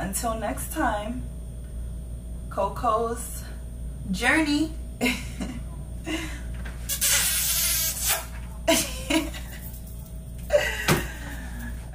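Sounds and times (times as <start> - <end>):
steady low hum: 0.0 - 11.9
woman laughing: 5.0 - 6.4, 8.7 - 9.7, 10.5 - 11.6.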